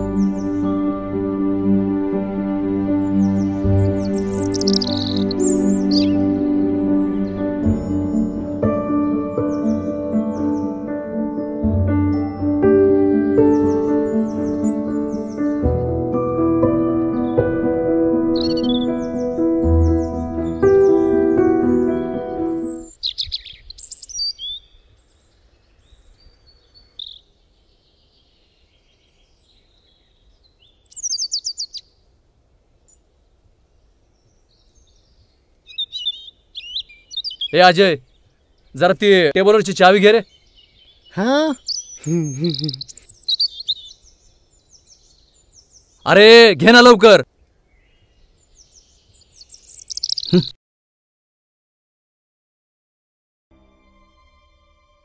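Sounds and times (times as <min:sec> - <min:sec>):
birds chirping: 0:00.0 - 0:32.1, 0:32.8 - 0:50.6
loud bird call: 0:03.0 - 0:08.2, 0:17.3 - 0:21.0, 0:41.0 - 0:44.0, 0:49.5 - 0:50.6
faint outdoor background noise: 0:22.6 - 0:50.5.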